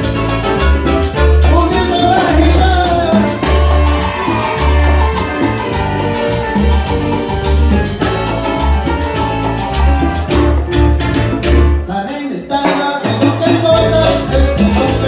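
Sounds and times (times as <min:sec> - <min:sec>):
bass pulse: 0:00.0 - 0:11.8
salsa band playing: 0:00.0 - 0:15.0.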